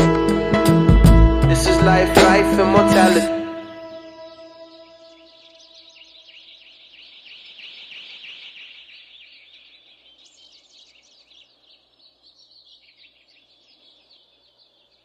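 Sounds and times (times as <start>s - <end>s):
held musical chord: 0.0s - 5.9s
birds chirping: 0.0s - 15.0s.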